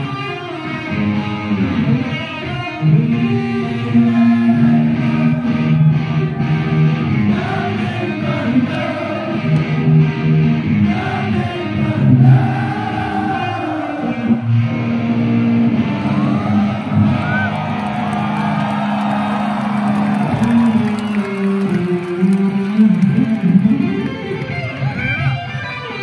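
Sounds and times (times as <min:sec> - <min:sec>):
concert crowd noise: 0:00.0 - 0:26.0
electric guitar solo: 0:00.0 - 0:26.0.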